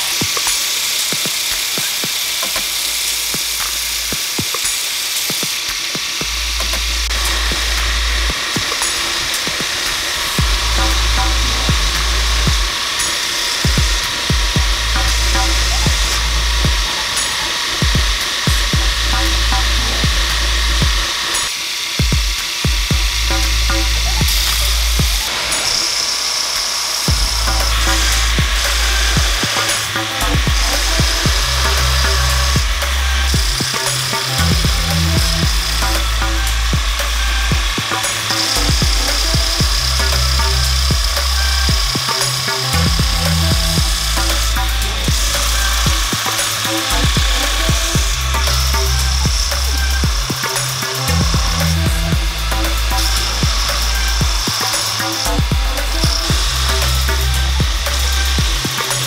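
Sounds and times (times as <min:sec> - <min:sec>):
belt grinder grinding steel: 0:00.0 - 0:59.0
background music with deep bass: 0:05.6 - 0:25.5, 0:27.1 - 0:59.0.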